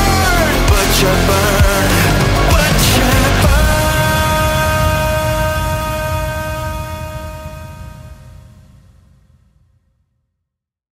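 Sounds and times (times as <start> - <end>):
low rumble: 0.0 - 9.8.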